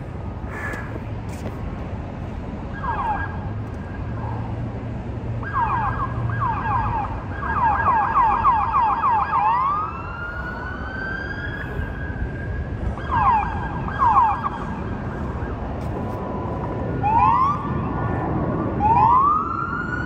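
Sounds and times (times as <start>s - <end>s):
electronic siren yelping and wailing: 2.8s - 3.4s, 5.4s - 15.7s, 16.3s - 20.0s.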